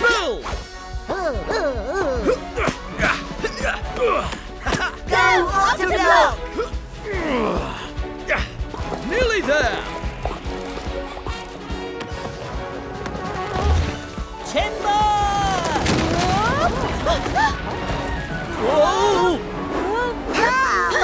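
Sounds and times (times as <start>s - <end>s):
cartoon background music: 0.0s - 21.0s
falling blocks crashing: 15.1s - 18.9s.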